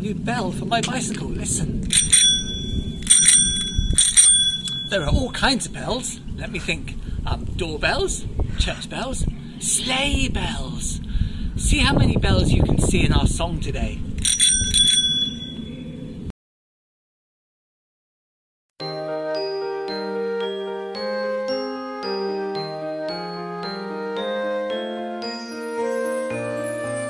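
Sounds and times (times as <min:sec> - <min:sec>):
bicycle bell ringing: 0:01.9 - 0:05.2, 0:14.2 - 0:15.7.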